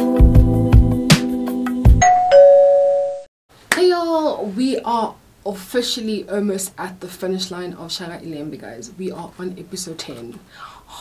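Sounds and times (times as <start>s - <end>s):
two-note ding-dong chime: 2.0s - 3.2s.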